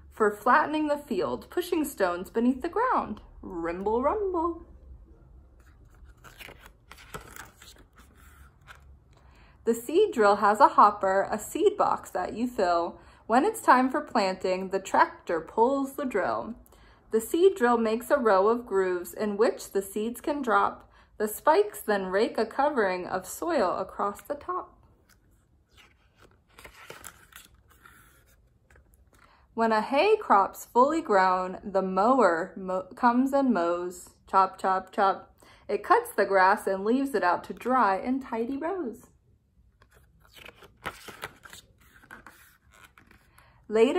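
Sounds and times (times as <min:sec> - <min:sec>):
paper pages rustling: 0:05.6 - 0:09.2, 0:25.0 - 0:29.3, 0:39.8 - 0:43.5.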